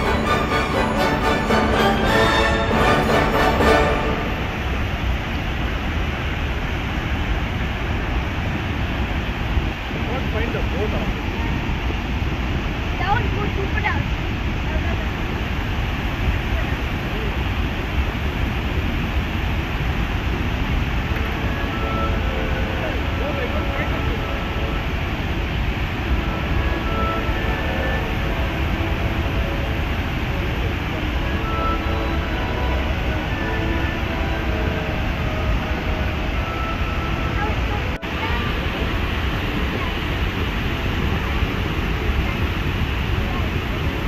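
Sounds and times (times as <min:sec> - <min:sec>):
waterfall roaring: 0:00.0 - 0:44.0.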